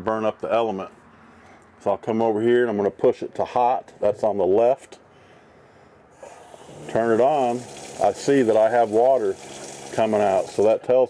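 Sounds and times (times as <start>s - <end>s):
water running into sink: 6.5s - 10.8s.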